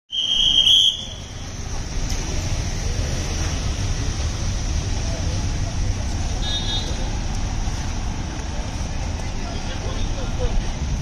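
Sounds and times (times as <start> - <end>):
low rumble of street traffic: 0.1 - 11.0.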